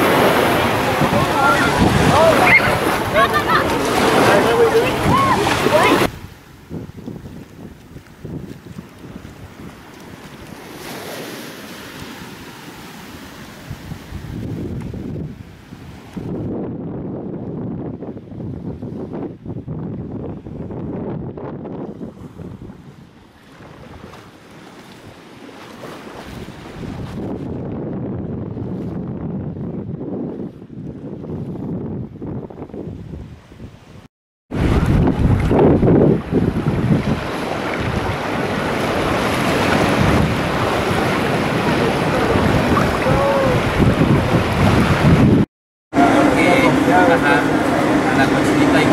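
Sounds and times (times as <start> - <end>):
sea water lapping: 0.0 - 6.4, 7.0 - 16.4, 21.9 - 27.6, 33.0 - 48.9
gentle surf wash: 0.0 - 16.7, 21.6 - 27.8, 32.7 - 48.9
wind buffeting microphone: 0.0 - 25.2, 25.8 - 48.9.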